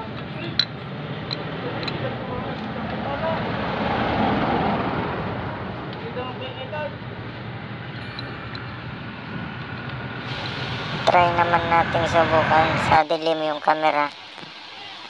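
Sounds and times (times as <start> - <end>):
motor vehicle engine: 0.0 - 13.1.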